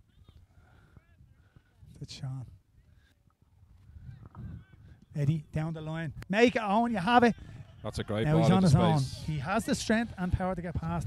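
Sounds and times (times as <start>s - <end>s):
commentator speaking: 5.1s - 11.0s.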